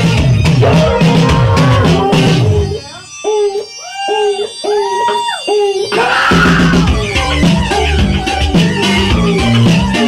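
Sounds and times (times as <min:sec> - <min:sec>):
punk band playing: 0:00.0 - 0:03.2, 0:05.9 - 0:10.0
sliding bending notes: 0:00.4 - 0:06.1.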